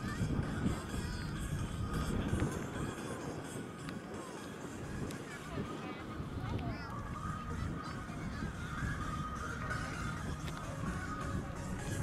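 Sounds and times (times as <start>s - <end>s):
bonfire burning rumble: 0.0s - 12.0s.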